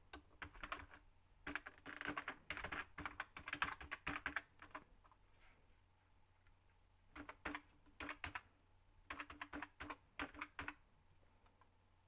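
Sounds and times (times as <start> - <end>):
faint laptop keyboard typing: 0.0 - 5.2, 7.1 - 10.8.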